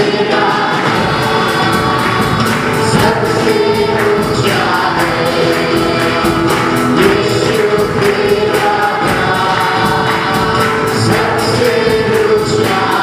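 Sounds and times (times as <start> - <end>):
group singing gospel song: 0.0 - 13.0
instruments with quick percussion beat: 0.0 - 13.0.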